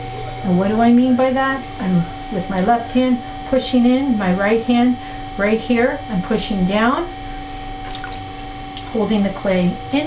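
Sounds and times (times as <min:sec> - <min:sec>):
wet clay squishing: 0:07.8 - 0:09.0.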